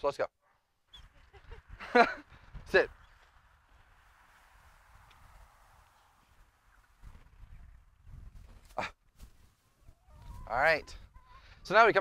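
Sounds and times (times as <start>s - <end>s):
soft steady outdoor hiss: 0.0s - 12.0s.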